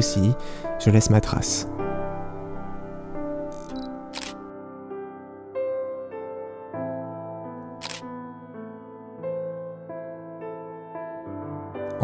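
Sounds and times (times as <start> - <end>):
soft piano music: 0.0 - 12.0
camera shutter clicks: 3.5 - 4.5, 7.8 - 8.1.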